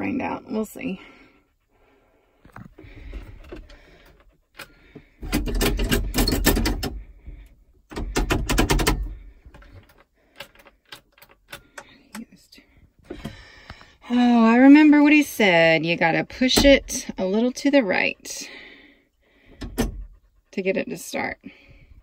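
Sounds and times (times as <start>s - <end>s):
clicking and rattling of controls: 2.5s - 13.9s, 16.3s - 18.5s, 19.5s - 21.3s.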